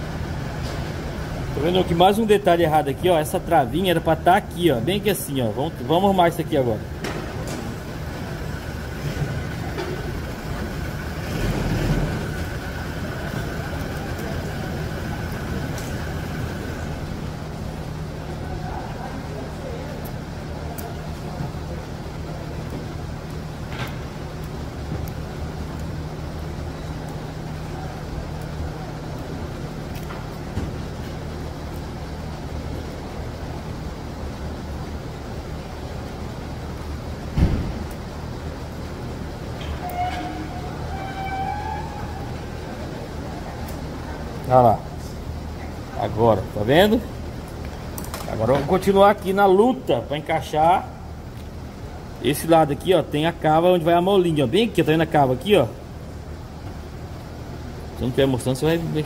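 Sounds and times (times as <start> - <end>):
machine humming: 0.0 - 20.6
thin high whine: 39.6 - 43.1.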